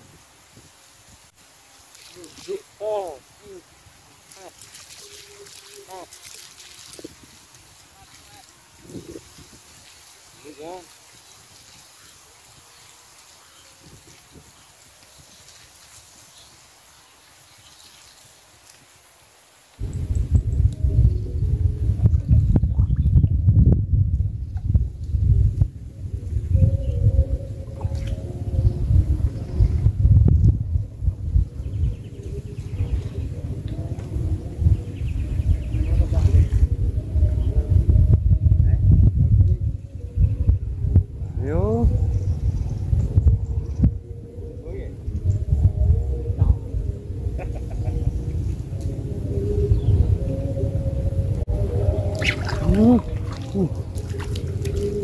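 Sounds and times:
faint water splashes: 1.3s - 19.9s, 51.6s - 55.0s
muffled underwater rumbling and knocking: 19.8s - 25.7s.

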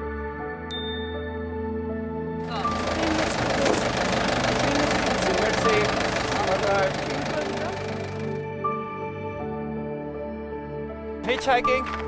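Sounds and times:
indistinct voices: 2.4s - 8.3s
truck road and engine noise: 2.4s - 8.5s.

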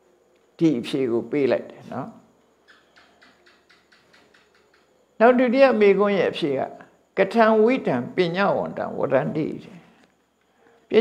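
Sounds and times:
faint rapid ticks: 2.7s - 4.9s.

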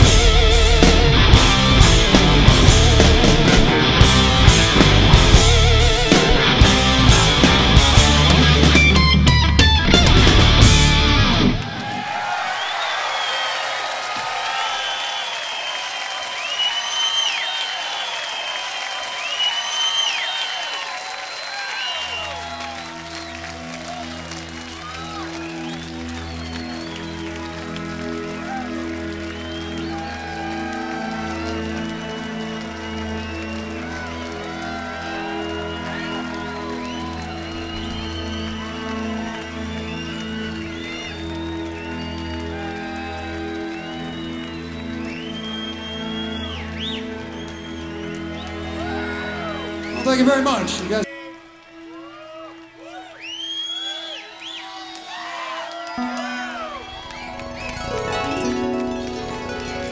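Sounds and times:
rock guitar song: 0.0s - 11.7s
crowd cheering whistling and applauding: 0.0s - 59.9s.

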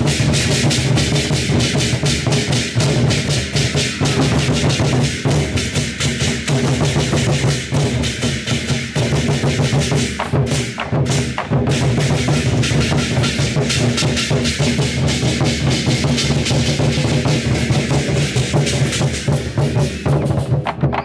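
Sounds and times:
barrel drums beating: 0.0s - 21.0s
hand cymbals clashing: 0.0s - 21.0s.

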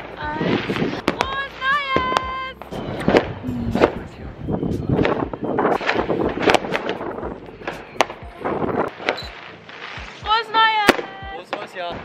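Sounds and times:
firecrackers banging: 5.0s - 8.2s.

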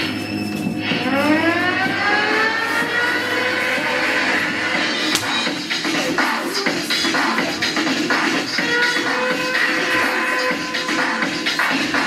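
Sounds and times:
rising siren-like synth whine: 0.1s - 5.0s.

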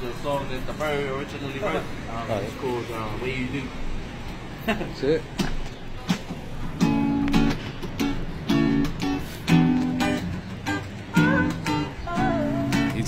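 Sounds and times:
acoustic guitar strumming chords: 5.4s - 13.0s.

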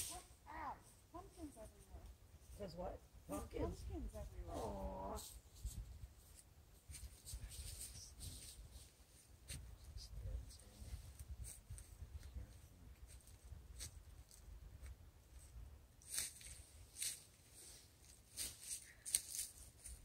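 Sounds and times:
wind rumbling on microphone: 2.8s - 16.1s.

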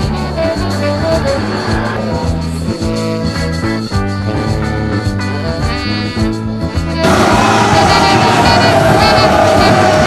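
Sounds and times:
dense noisy din: 7.0s - 10.0s
loud horn-like tone: 7.0s - 10.0s.

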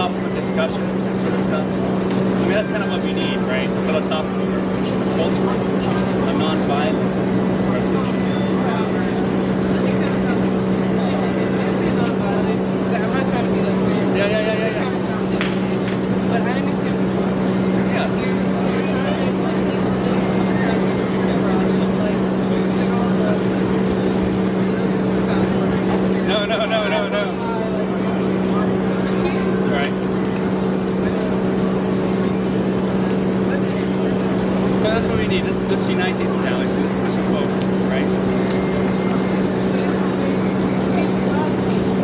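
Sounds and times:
faint voices talking: 0.0s - 42.0s
low mechanical hum: 0.0s - 42.0s
outdoor background noise: 0.0s - 42.0s.

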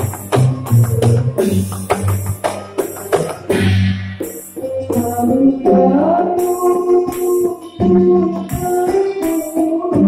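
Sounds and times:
drum strokes: 0.0s - 7.8s.

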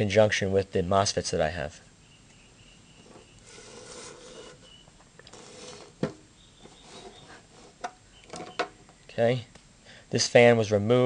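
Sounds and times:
sheet metal scraping on concrete: 3.0s - 8.6s.

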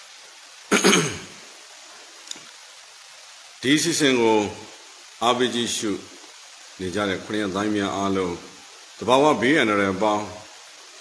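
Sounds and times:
man clearing his throat: 0.7s - 1.4s.

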